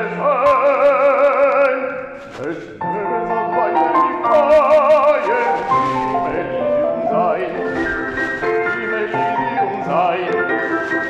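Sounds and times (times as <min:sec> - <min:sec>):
man operatic singing: 0:00.0 - 0:11.0
classical accompaniment held notes: 0:02.8 - 0:11.0.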